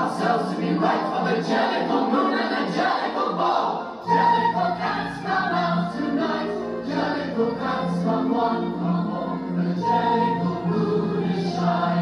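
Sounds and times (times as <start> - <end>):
chorus singing over a band: 0.0 - 12.0.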